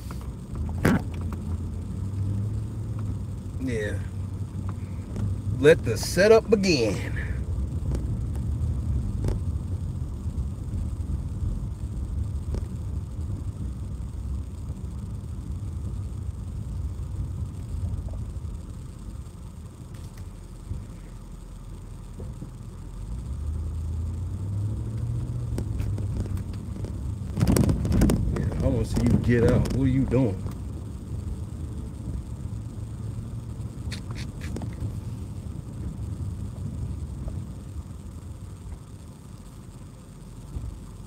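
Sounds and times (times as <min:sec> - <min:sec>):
car engine and road noise: 0:00.0 - 0:41.0.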